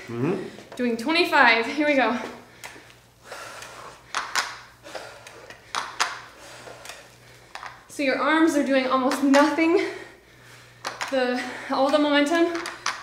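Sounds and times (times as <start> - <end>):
sharp breaths: 2.4 - 7.8.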